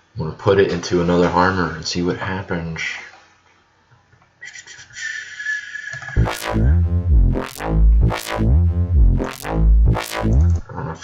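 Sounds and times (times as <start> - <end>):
high-pitched synth tone stuttering: 6.2 - 10.7.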